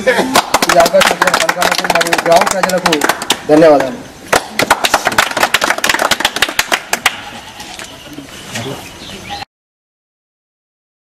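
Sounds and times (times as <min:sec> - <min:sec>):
people clapping: 0:00.1 - 0:07.4.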